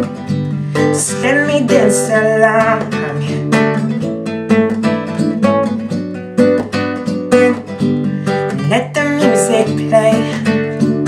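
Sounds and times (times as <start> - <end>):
classical guitar strumming chords: 0.0 - 11.0.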